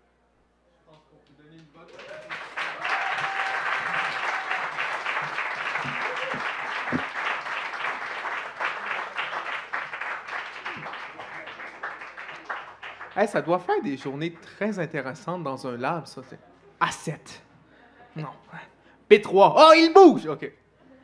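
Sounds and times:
audience applauding: 1.8s - 14.6s.

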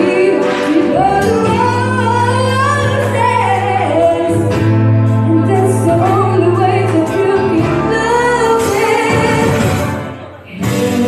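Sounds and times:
live band playing: 0.0s - 11.0s
woman singing: 0.0s - 11.0s.

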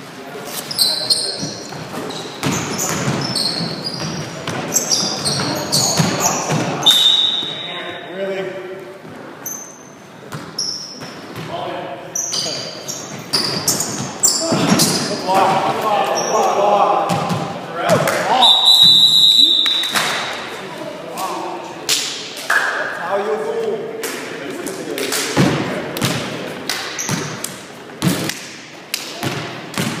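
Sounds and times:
players' voices and chatter: 0.0s - 30.0s
sneakers squeaking on hardwood: 0.6s - 7.7s, 9.4s - 11.5s, 12.2s - 15.2s, 27.0s - 27.4s.

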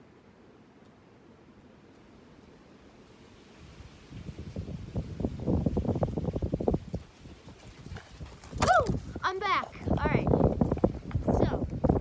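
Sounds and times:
wind rumbling on microphone: 3.0s - 12.0s
footsteps on sandy dirt: 5.7s - 9.3s.

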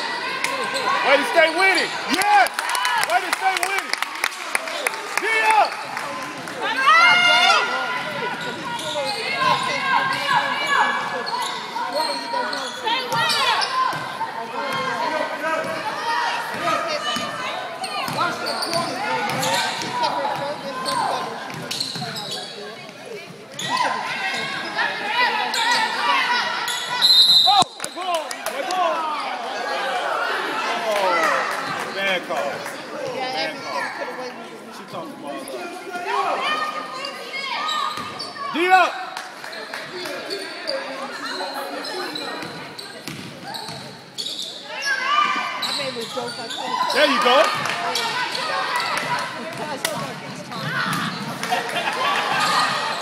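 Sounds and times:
sneakers squeaking: 8.0s - 14.9s, 16.5s - 28.1s, 36.6s - 38.6s, 39.5s - 53.0s
whistle blast: 27.0s - 27.7s.

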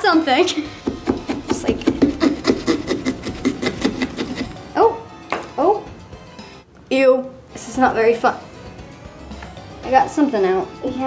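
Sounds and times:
carving tool sawing through pumpkin: 0.8s - 4.6s.

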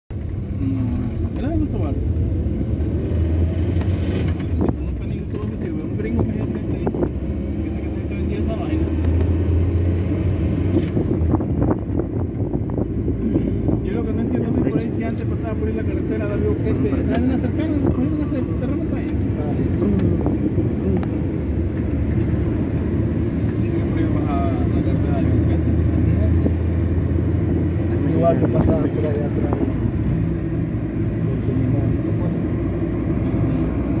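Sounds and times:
car engine and tyre rumble: 0.1s - 34.0s.

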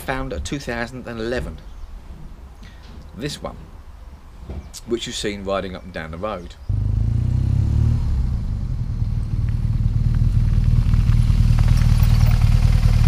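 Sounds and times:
motorcycle engine rumble: 6.7s - 13.0s.

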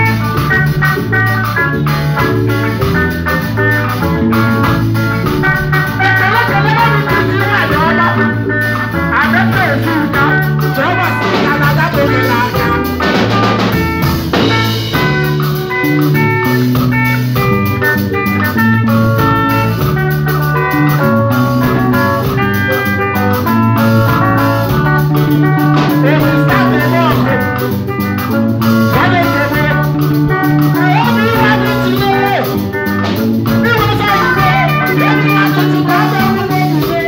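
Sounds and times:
bass line: 0.0s - 37.0s
drum beat: 0.0s - 37.0s
electric guitar lines: 0.0s - 37.0s.

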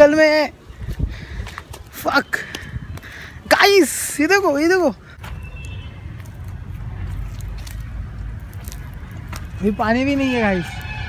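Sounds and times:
flip-flop footsteps on dry soil: 5.2s - 11.0s.

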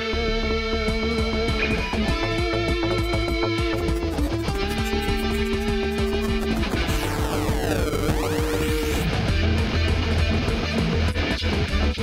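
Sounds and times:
electric guitar playing: 0.1s - 11.7s
heavy bass line: 2.0s - 10.1s.

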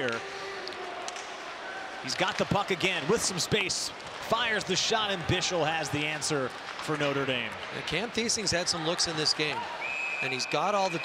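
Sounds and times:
faint clicks from play on ice: 6.5s - 7.8s.

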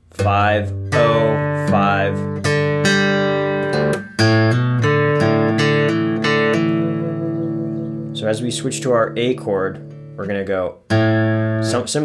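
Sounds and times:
fingerpicked acoustic guitar: 0.0s - 12.0s.

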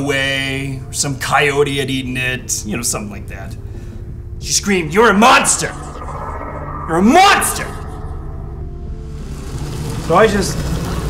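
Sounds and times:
low steady rumble: 5.0s - 10.0s
faint held tones: 5.1s - 9.6s.

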